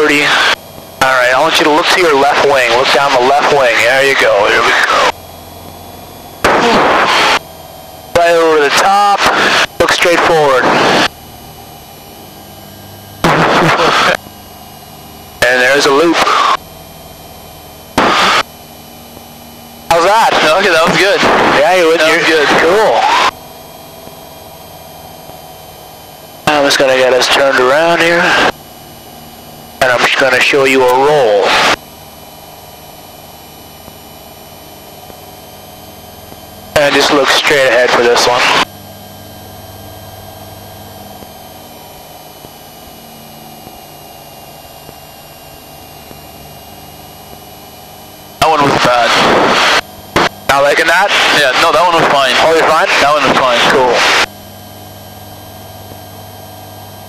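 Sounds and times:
faint high whine: 0.0s - 57.0s
low steady drone: 0.0s - 57.0s.

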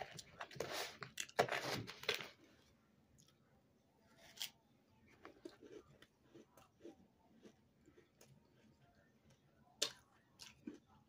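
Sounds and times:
plastic spoon in plastic tub: 0.0s - 2.4s.

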